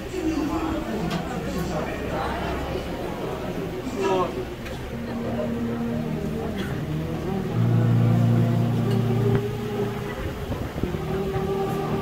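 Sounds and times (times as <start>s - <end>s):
wind and brass held low notes: 4.9s - 12.0s.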